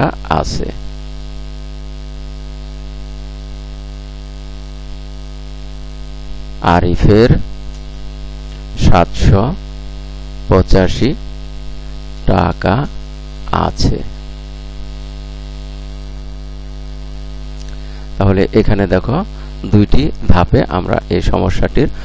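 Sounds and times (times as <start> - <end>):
person speaking: 0.0 - 0.9, 6.6 - 7.7, 8.6 - 9.6, 10.5 - 14.3, 17.6 - 22.0
electrical mains hum: 0.0 - 22.0.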